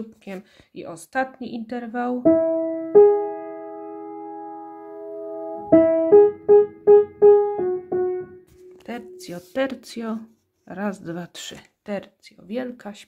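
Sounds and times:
upright piano playing interval: 2.2s - 9.6s.

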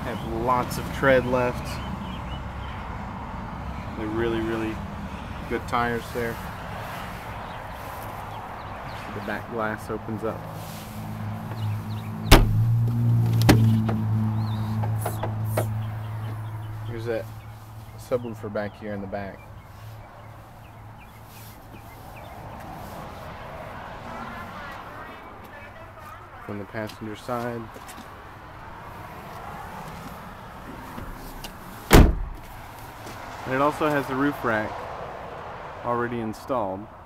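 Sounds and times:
outdoor background noise: 0.0s - 37.0s
car door clunk: 12.2s - 14.2s, 14.8s - 15.8s, 30.7s - 32.5s
sharp loud knock: 12.3s - 12.6s.

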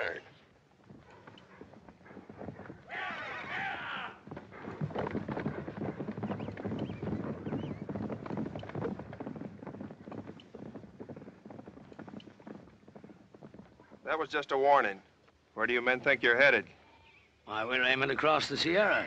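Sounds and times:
horses galloping: 0.0s - 19.0s.

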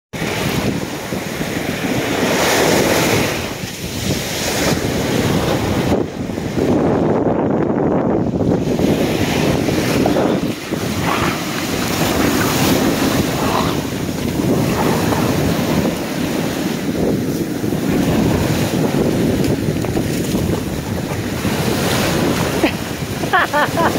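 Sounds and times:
wind buffeting microphone: 0.1s - 23.9s
waves breaking in shallows: 0.2s - 6.9s, 8.2s - 23.9s.

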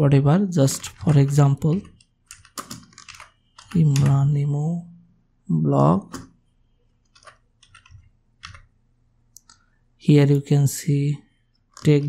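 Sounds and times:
computer keyboard clicks: 0.8s - 4.1s, 7.0s - 8.7s.

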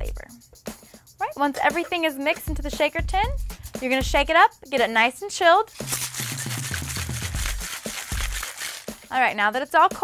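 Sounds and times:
background music: 0.0s - 10.0s
ice rattling in cocktail shaker: 5.7s - 9.2s.

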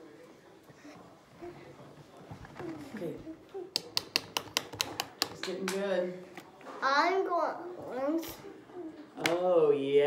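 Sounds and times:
sharp taps on hard surface: 3.7s - 5.9s.

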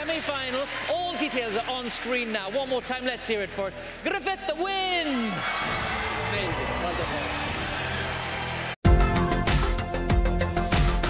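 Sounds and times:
audience applause: 0.0s - 8.8s
show music: 6.6s - 11.0s
different music: 6.8s - 11.0s.

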